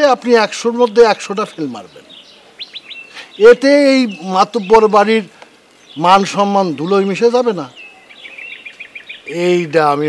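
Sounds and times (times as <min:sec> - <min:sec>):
small bird chirping: 0:00.8 - 0:09.6.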